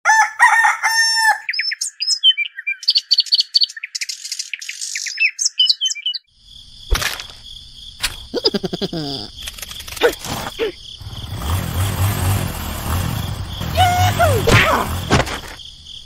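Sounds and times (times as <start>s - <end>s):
rooster crowing: 0.0s - 1.5s
small birds chirping: 1.5s - 6.9s, 7.5s - 16.0s.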